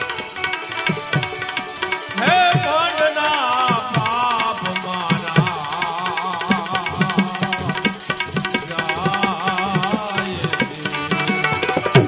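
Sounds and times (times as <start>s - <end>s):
hand cymbals clinking: 0.0s - 12.0s
harmonium and banjo melody: 0.0s - 12.0s
tabla strokes: 0.0s - 12.0s.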